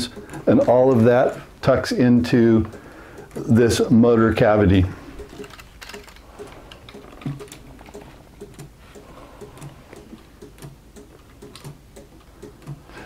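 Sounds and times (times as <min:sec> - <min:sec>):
pendulum clocks ticking: 0:00.0 - 0:13.0.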